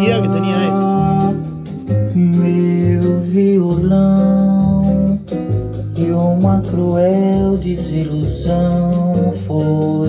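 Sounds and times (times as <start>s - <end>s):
person singing: 0.0s - 5.3s
guitar: 0.0s - 10.0s
song over loudspeakers: 0.0s - 10.0s.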